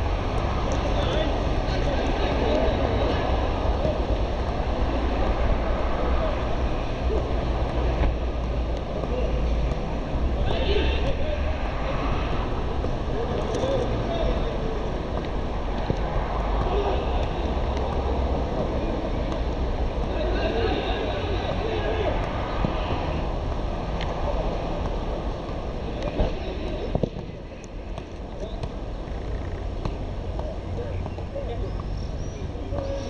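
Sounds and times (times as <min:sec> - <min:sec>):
faint indistinct voices: 0:00.0 - 0:33.0.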